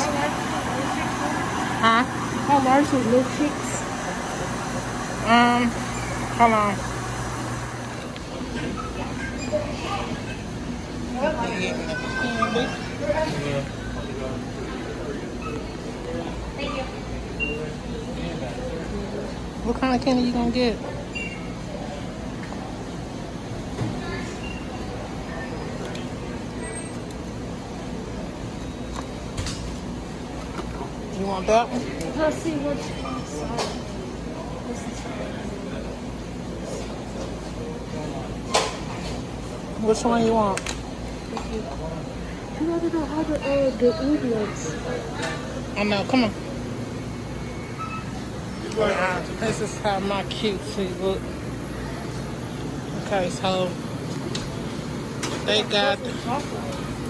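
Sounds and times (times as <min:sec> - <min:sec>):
store room tone hum: 0:00.0 - 0:57.0.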